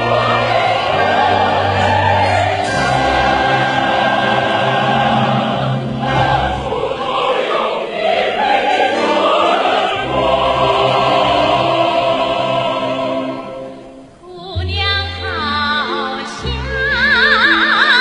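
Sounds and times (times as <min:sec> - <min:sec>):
choir singing: 0:00.0 - 0:14.2
orchestra playing: 0:00.0 - 0:14.2
soprano singing operatically: 0:14.2 - 0:18.0.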